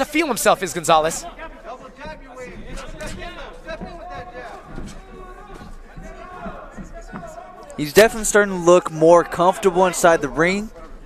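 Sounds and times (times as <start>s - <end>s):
men talking and calling out: 0.0s - 11.0s.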